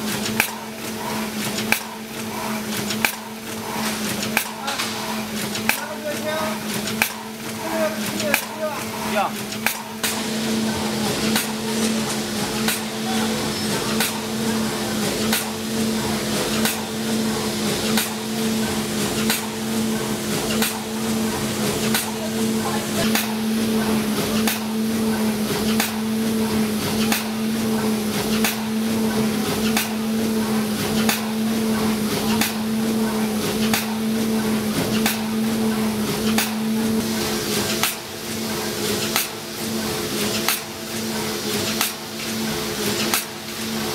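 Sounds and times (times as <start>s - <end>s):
machine mechanism clacking: 0.0s - 34.0s
machine motor hum: 0.0s - 43.9s.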